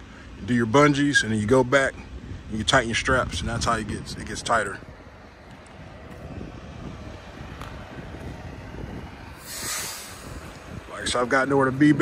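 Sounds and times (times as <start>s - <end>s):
wind buffeting microphone: 1.4s - 12.0s.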